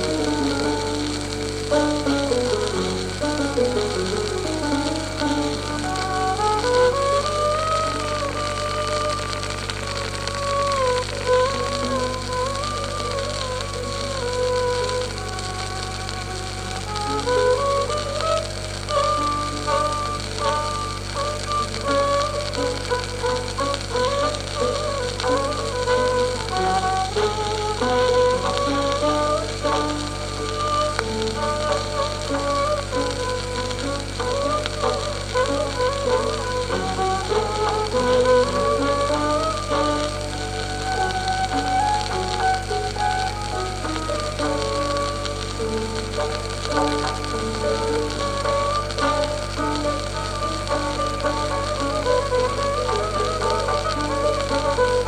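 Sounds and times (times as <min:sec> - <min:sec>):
piano: 0:00.0 - 0:55.0
record surface hiss: 0:00.0 - 0:55.0
tabla: 0:00.0 - 0:55.0
violin melody: 0:00.0 - 0:55.0.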